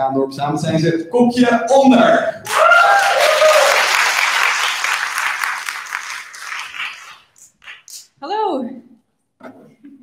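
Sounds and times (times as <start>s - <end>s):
audience applauding: 2.4s - 8.0s.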